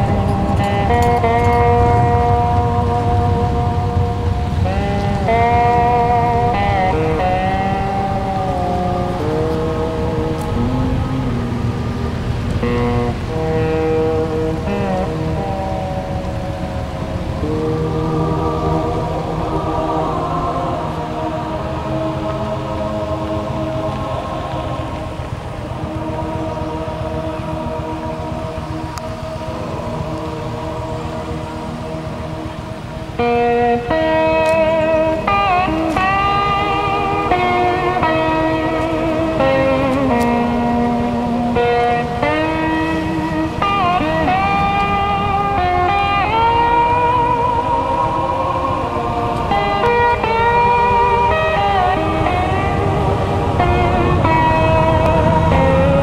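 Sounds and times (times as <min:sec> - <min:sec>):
slow music of long held notes: 0:00.0 - 0:56.0
steady rushing noise: 0:00.0 - 0:56.0.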